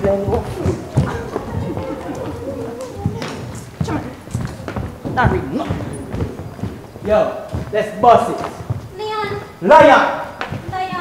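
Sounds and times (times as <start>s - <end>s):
overlapping chatter: 0.0s - 11.0s
shoes clattering on stage floor: 0.0s - 11.0s.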